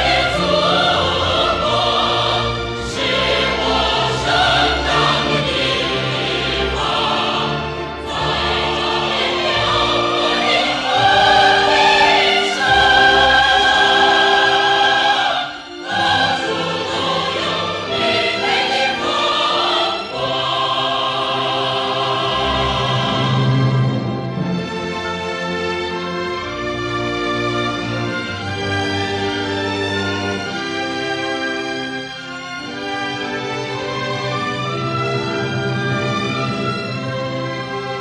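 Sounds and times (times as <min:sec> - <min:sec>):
operatic singing: 0:00.0 - 0:25.0
orchestral accompaniment: 0:00.0 - 0:38.0.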